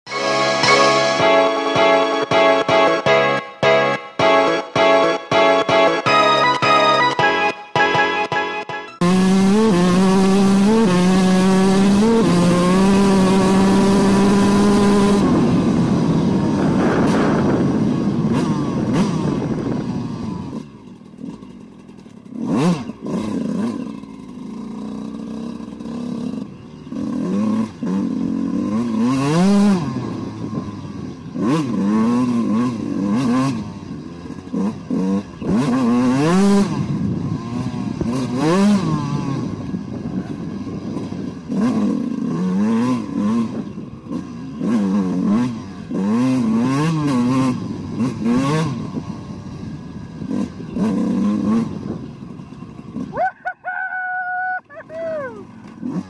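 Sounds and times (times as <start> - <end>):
two-stroke motorcycle engine revving: 9.0 - 53.5, 54.6 - 56.0.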